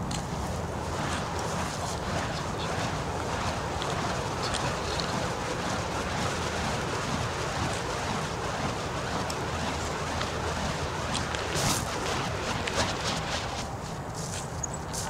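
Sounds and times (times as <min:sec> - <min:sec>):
fire poi whooshing: 0:00.2 - 0:14.3.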